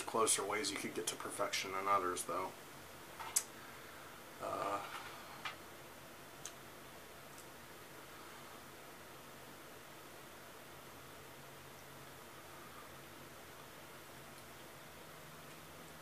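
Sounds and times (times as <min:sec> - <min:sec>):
faint hiss: 0:00.0 - 0:16.0.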